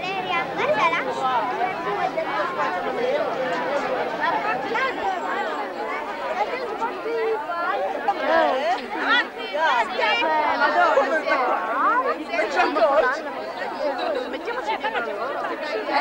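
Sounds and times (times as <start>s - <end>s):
crowd chatter: 0.0s - 16.0s.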